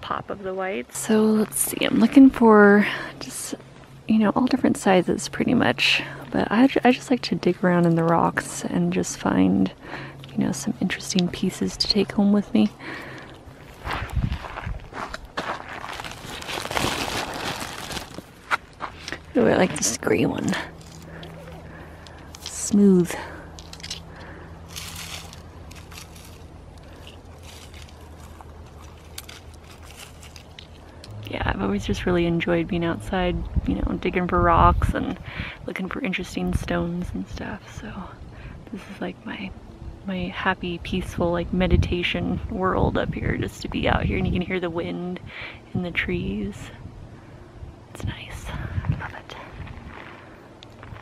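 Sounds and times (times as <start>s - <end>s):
steady low hum: 0.0s - 51.0s
leaves rustling: 12.7s - 31.2s
wind buffeting microphone: 13.4s - 15.4s, 31.0s - 35.6s, 40.6s - 44.9s, 45.8s - 50.3s
stones clicking and scraping: 20.4s - 31.2s.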